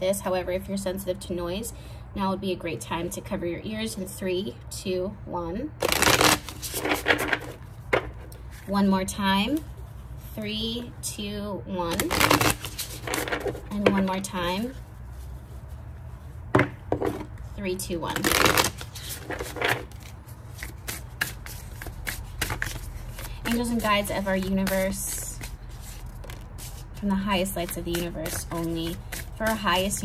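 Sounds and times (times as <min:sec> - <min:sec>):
cards being shuffled: 0:05.8 - 0:08.7, 0:11.9 - 0:15.0, 0:17.0 - 0:30.0
cards shuffling flutter: 0:05.8 - 0:08.7, 0:11.9 - 0:13.7.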